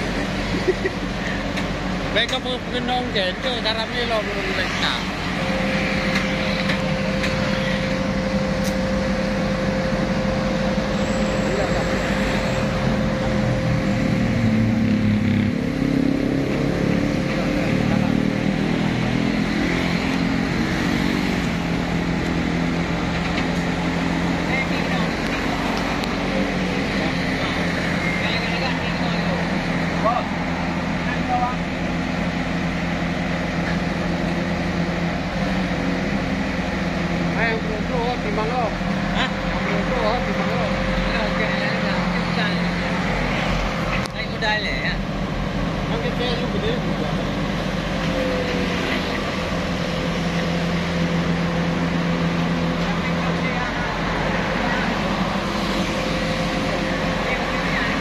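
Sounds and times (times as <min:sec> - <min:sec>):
truck engine running: 0:00.0 - 0:58.0
thin steady whine: 0:02.0 - 0:35.2.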